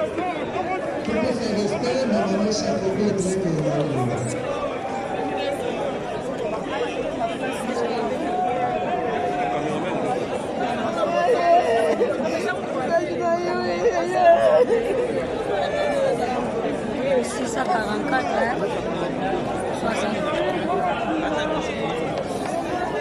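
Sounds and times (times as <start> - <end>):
crowd talking and calling: 0.0 - 23.0
people weeping aloud: 13.4 - 15.2.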